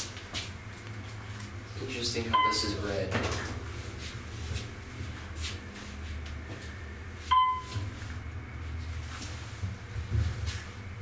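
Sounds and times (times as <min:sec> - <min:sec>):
elevator running rumble: 0:00.0 - 0:11.0
electronic chime: 0:07.3 - 0:07.8.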